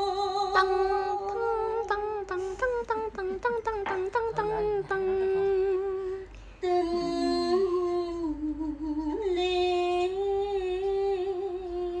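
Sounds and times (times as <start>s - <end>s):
woman singing long notes: 0.0s - 12.0s.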